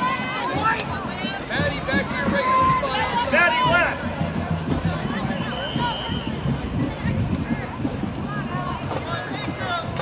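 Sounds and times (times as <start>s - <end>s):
distant voices: 0.0s - 10.0s
wind rumble on microphone: 4.1s - 10.0s.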